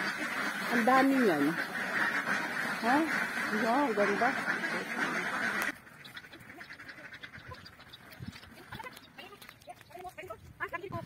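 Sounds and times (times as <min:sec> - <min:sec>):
ducks quacking: 0:00.0 - 0:11.0.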